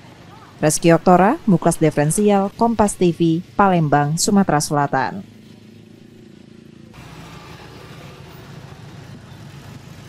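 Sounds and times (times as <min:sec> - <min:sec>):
motor scooters passing: 0:00.0 - 0:10.0
street traffic rumble: 0:00.0 - 0:10.0.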